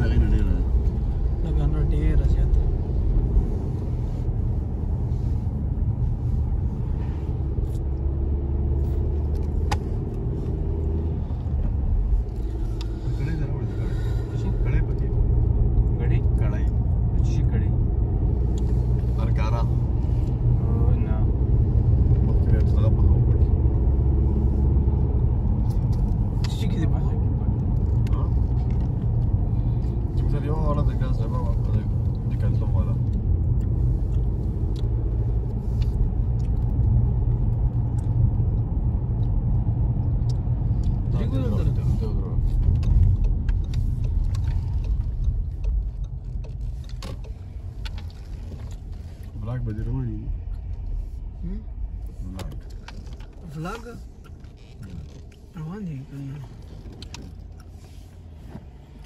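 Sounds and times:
engine and road rumble: 0:00.0 - 0:59.0.

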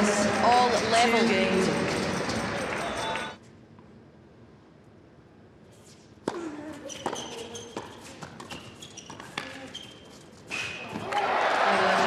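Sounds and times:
crowd cheering and applause: 0:00.0 - 0:03.4, 0:11.0 - 0:12.0
shoe squeaks on hard court: 0:06.7 - 0:11.0.

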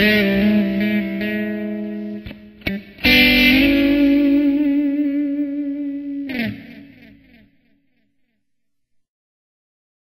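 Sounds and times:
electric guitar note sliding down: 0:03.0 - 0:07.4.

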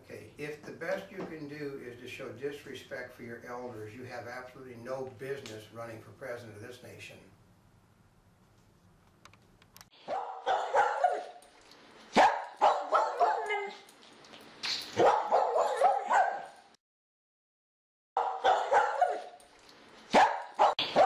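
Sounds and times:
dog barking: 0:10.0 - 0:11.4, 0:12.2 - 0:13.8, 0:15.0 - 0:16.6, 0:18.2 - 0:19.4, 0:20.1 - 0:21.0.

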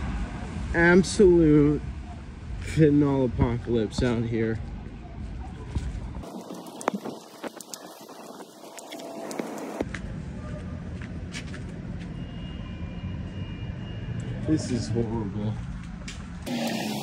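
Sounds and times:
street rumble: 0:00.0 - 0:17.0.

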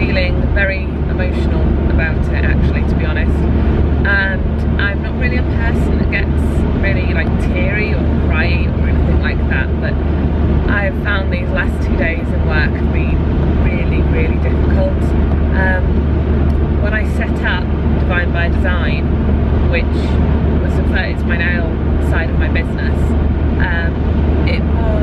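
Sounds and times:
woman talking: 0:00.0 - 0:10.0, 0:10.7 - 0:16.0, 0:16.8 - 0:19.1, 0:19.7 - 0:25.0
engine and road rumble: 0:00.0 - 0:25.0.

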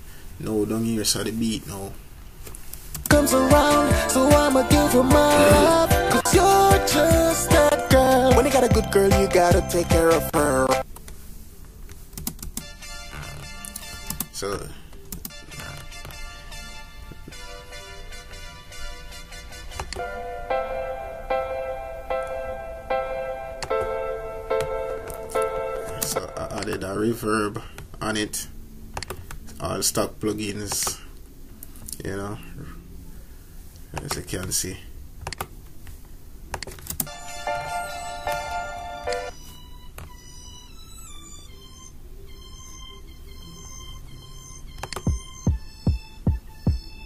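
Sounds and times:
faint music: 0:03.0 - 0:35.4, 0:36.4 - 0:47.0
keyboard and mouse clicks: 0:11.8 - 0:12.7, 0:13.6 - 0:14.3, 0:24.6 - 0:26.9, 0:28.9 - 0:29.5, 0:30.6 - 0:31.0, 0:33.9 - 0:34.6, 0:35.2 - 0:37.1, 0:44.8 - 0:45.3.

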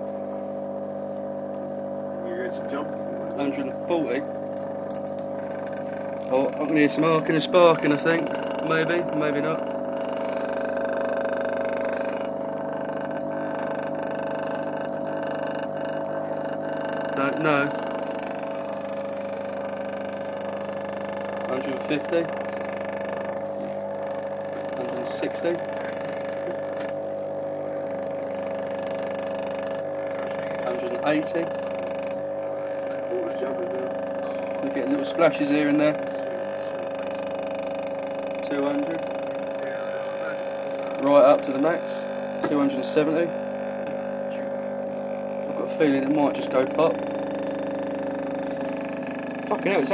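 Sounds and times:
underwater speaker buzzing drone: 0:00.0 - 0:49.9.

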